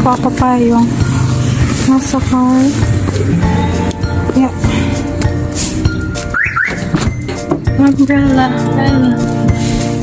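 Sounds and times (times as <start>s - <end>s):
background music: 0.0s - 10.0s
woman speaking: 1.8s - 2.8s, 4.2s - 4.9s.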